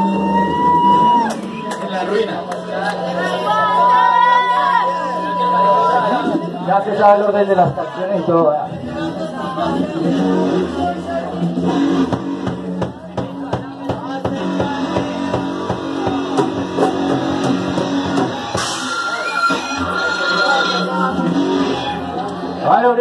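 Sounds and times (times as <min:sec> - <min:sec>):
bass ringing notes: 0:00.0 - 0:23.0
drum hits: 0:11.6 - 0:20.0.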